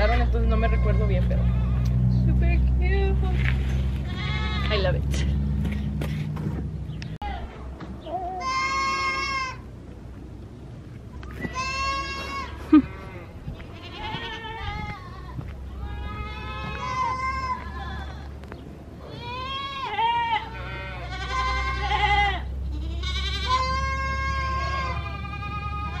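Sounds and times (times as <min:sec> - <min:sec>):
goats bleating: 0:00.0 - 0:01.9, 0:04.0 - 0:05.6, 0:08.1 - 0:09.6, 0:11.3 - 0:26.0
low steady rumble: 0:00.0 - 0:26.0.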